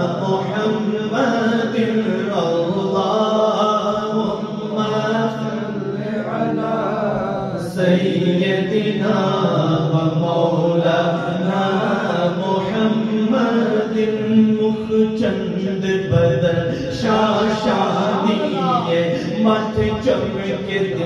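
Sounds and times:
men chanting devotional refrain: 0.0s - 21.0s.

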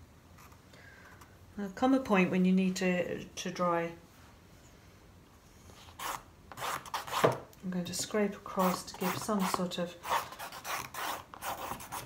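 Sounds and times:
wooden stick scraping paper: 5.8s - 7.3s, 8.6s - 12.0s.

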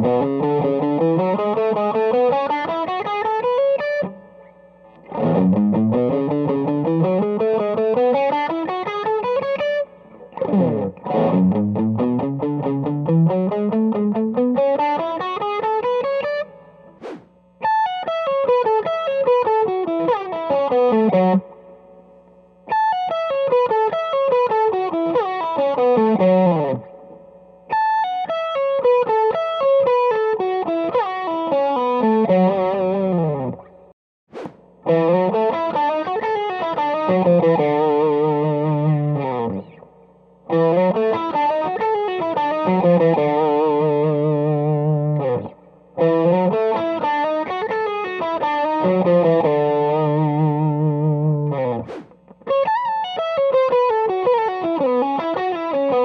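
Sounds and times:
electric guitar fast runs: 16.9s - 17.4s, 34.3s - 35.1s, 51.6s - 52.3s.

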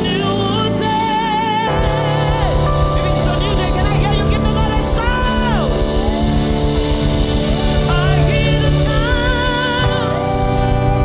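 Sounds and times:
gospel chords and bass: 0.0s - 11.0s.

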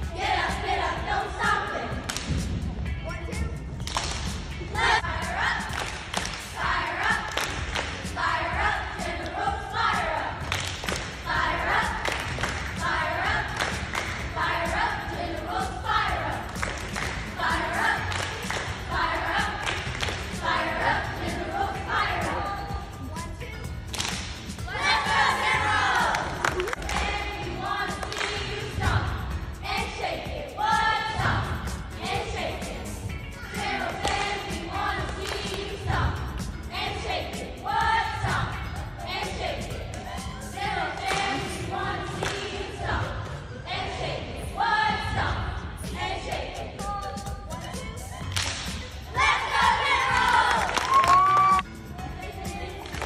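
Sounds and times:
girls chanting a cheer: 0.0s - 2.2s, 4.6s - 23.7s, 24.6s - 53.0s
hands clapping: 2.0s - 2.5s, 3.8s - 4.5s, 5.7s - 8.1s, 10.4s - 12.8s, 13.5s - 14.2s, 16.5s - 17.3s, 18.0s - 18.8s, 19.6s - 20.4s, 23.9s - 24.5s, 26.0s - 27.3s, 27.9s - 28.5s, 33.9s - 35.8s, 41.0s - 41.5s, 42.2s - 42.5s, 48.3s - 48.9s, 50.1s - 51.6s
children shouting a cheer: 49.1s - 51.6s.

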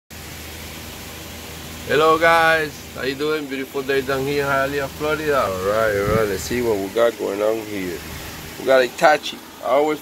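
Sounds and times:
outdoor background hiss: 0.1s - 10.0s.

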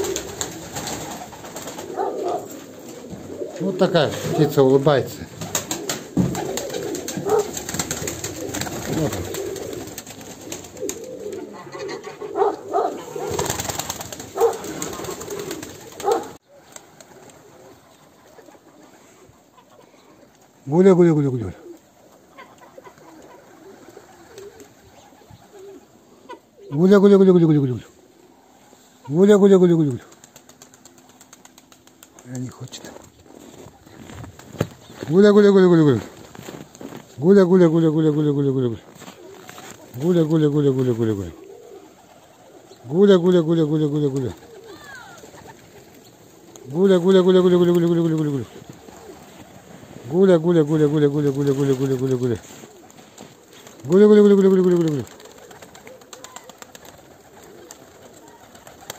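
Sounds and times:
wings flapping: 0.0s - 25.9s, 29.4s - 58.9s
faint outdoor background: 0.0s - 58.9s
pigeons cooing: 0.0s - 58.9s.

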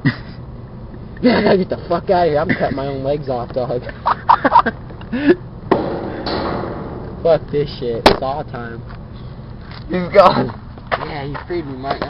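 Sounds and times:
man laughing: 0.0s - 0.5s, 1.2s - 3.0s, 3.7s - 5.5s.

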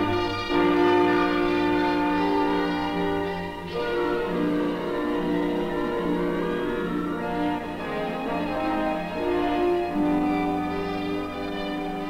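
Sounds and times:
orchestral strings sustained notes: 0.0s - 12.0s.

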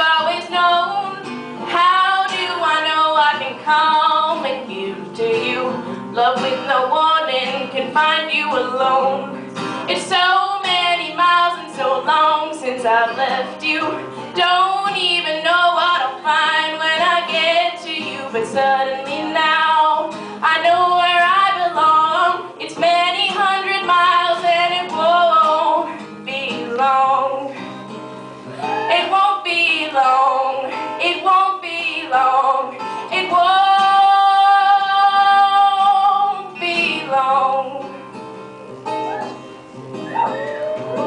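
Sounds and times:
woman singing: 0.0s - 27.7s, 28.5s - 38.1s
plucked acoustic guitar: 0.0s - 41.0s.

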